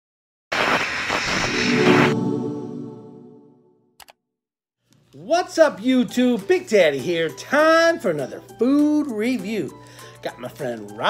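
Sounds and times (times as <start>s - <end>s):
loud rushing whoosh: 0.6s - 3.5s
pitched chord: 1.7s - 3.9s.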